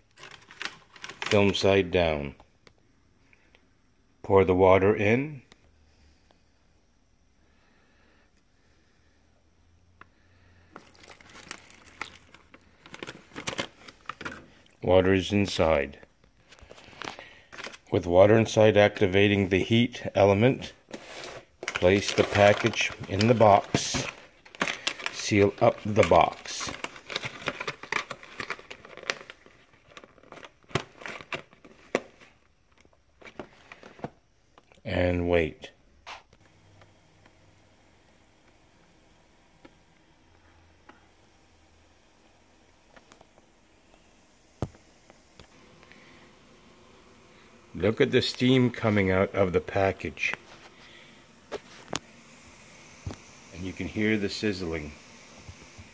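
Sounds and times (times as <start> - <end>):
plastic packaging crinkling: 0.0 - 1.6, 10.7 - 14.8, 16.4 - 17.9, 20.9 - 34.0, 44.6 - 55.9
cardboard box crinkling and rustling: 10.8 - 14.0, 21.6 - 31.4.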